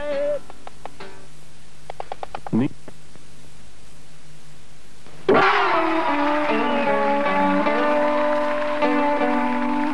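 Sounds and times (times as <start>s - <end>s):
guitar chords and ringing notes: 5.3s - 9.9s.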